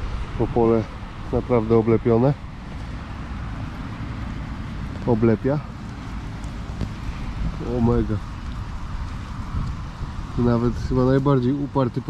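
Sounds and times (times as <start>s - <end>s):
wind on microphone: 0.0s - 11.8s
distant traffic rumble: 0.0s - 12.0s.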